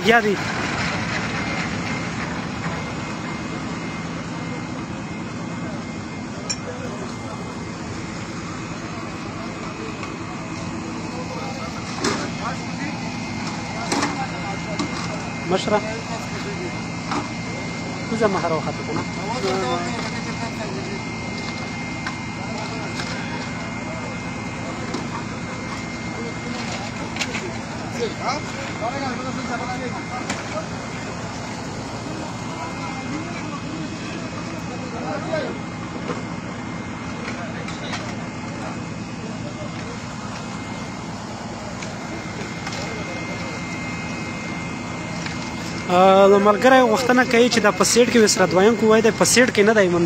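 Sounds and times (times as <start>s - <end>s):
drilling rig machine hum: 0.0s - 50.0s
faint steady whine: 0.0s - 50.0s
hoist engine rumbling: 0.0s - 50.0s
people talking: 0.0s - 50.0s
people's voices: 0.0s - 50.0s.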